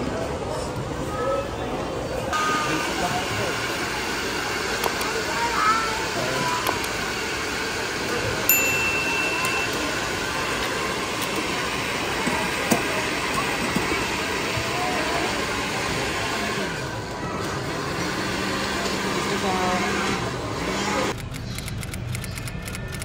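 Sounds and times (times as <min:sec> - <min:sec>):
background crowd chatter: 0:00.0 - 0:23.0.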